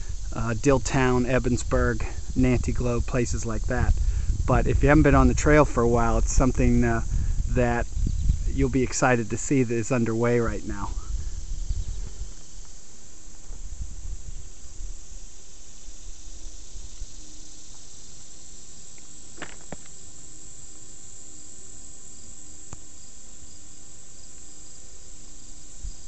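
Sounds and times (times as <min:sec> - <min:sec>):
low rumble on microphone: 0:00.0 - 0:18.4
insects trilling: 0:00.0 - 0:26.0.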